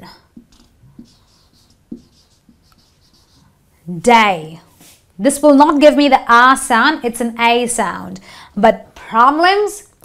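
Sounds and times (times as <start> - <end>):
marker scratching on whiteboard: 0.4 - 3.6.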